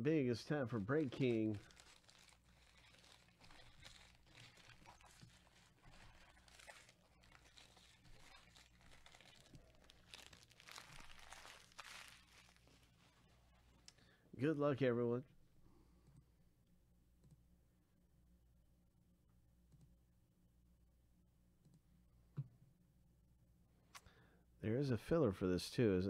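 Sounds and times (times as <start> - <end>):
faint rustling and crinkling: 0.4 - 14.0.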